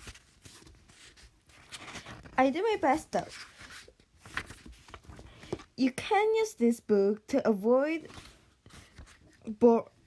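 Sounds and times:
soft small noises: 0.0s - 10.0s.

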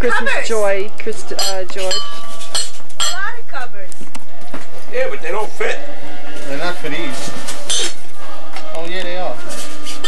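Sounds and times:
cookware clinking and knocking: 1.4s - 3.3s.

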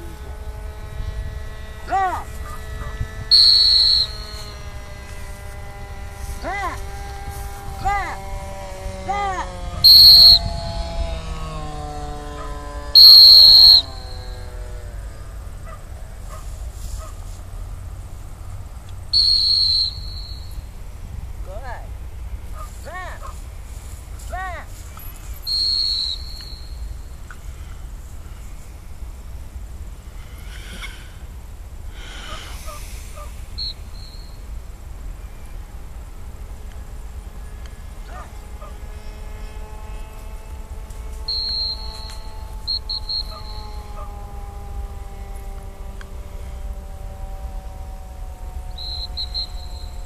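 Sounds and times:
faint distant calls and chirps: 0.0s - 50.0s
low wind rumble: 0.0s - 50.0s
dog whistle blasts: 3.3s - 4.6s, 9.8s - 10.5s, 13.0s - 14.4s, 19.1s - 20.6s, 25.4s - 26.8s, 33.6s - 34.4s, 41.3s - 43.7s, 48.8s - 49.9s.

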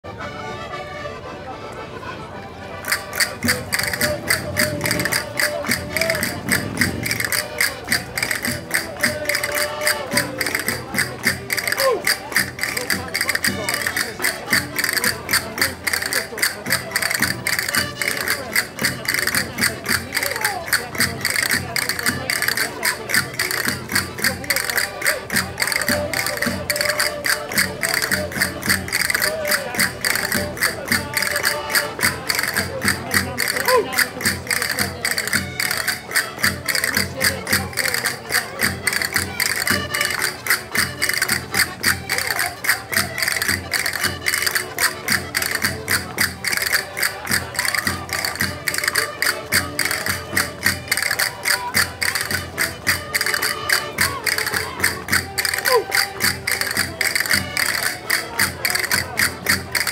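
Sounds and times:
folk dance music held chords: 0.0s - 59.9s
sharp percussion beat: 2.8s - 59.9s.

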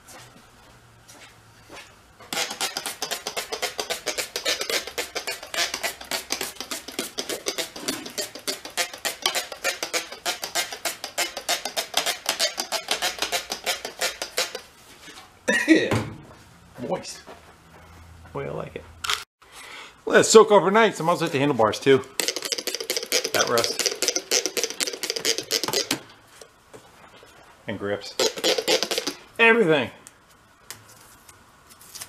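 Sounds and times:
rag rubbing on steel frame: 2.3s - 14.7s, 22.2s - 26.0s, 28.1s - 29.2s.

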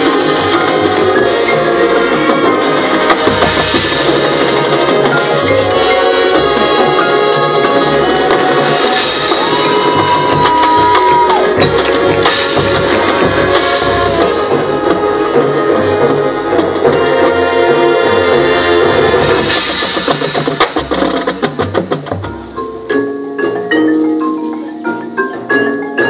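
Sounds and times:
sharp drum strokes: 0.0s - 17.6s, 18.5s - 22.6s
marching band playing: 0.0s - 26.0s.

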